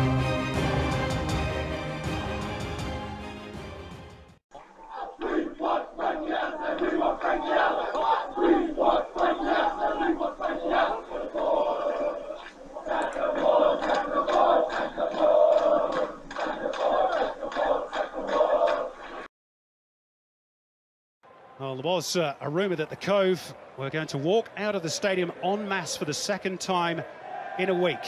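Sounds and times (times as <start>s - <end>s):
crowd chanting: 4.8s - 19.3s, 23.1s - 28.0s.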